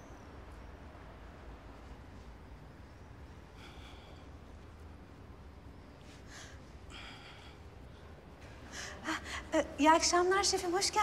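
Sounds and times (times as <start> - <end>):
woman speaking: 9.5 - 11.0.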